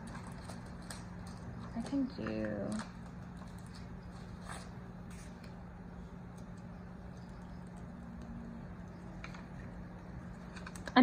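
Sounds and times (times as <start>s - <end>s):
clicks and taps of handling stickers: 0.0s - 3.8s
steady low hum: 0.0s - 11.0s.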